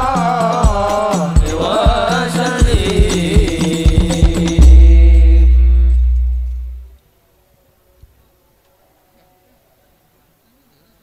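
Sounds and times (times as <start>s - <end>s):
bass drum boom: 2.9s - 7.0s.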